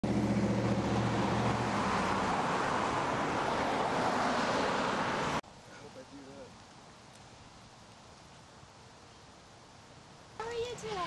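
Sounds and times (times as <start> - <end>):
low engine hum: 0.0 - 4.0
road traffic rush: 0.0 - 11.0.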